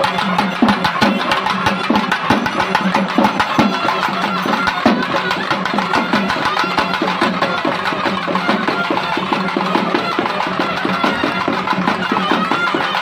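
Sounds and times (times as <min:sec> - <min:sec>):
double-reed pipes melody: 0:00.0 - 0:13.0.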